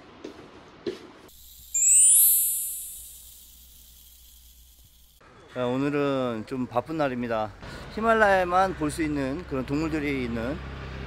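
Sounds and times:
glittering rising chime: 1.4 - 5.2.

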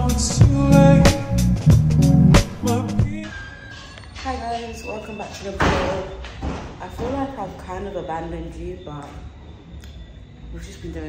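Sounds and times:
woman talking: 4.2 - 9.2, 10.5 - 11.0
door slamming: 5.3 - 7.4.

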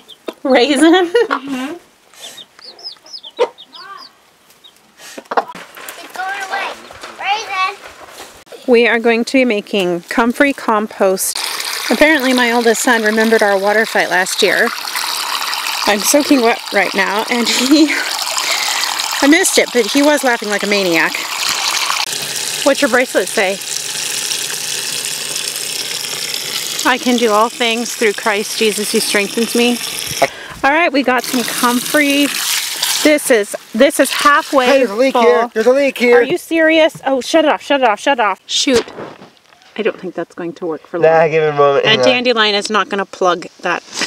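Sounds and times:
chicks peeping: 2.2 - 5.5
hen clucking: 2.2 - 5.6
hose water pouring into bucket: 11.4 - 30.4, 31.2 - 35.8.

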